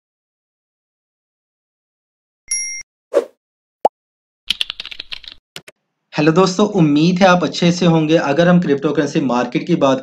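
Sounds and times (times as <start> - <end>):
computer keyboard typing: 4.5 - 5.8.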